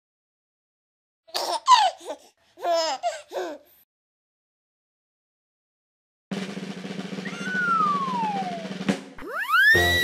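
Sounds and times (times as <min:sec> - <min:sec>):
baby giggling: 0:01.3 - 0:03.7.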